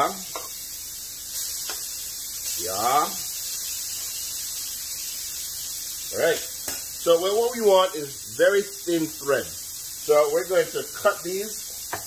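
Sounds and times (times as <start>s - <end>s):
chicken sizzling in a pan: 0.0s - 12.0s.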